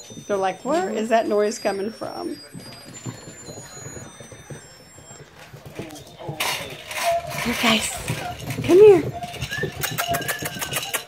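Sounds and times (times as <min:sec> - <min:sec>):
toy electronic beeping: 0:00.0 - 0:11.0
puppy claws clicking on tile: 0:06.4 - 0:11.0.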